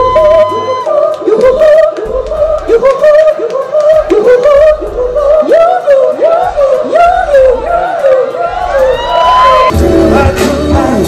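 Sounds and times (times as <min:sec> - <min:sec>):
woman singing wordless runs: 0:00.0 - 0:09.0.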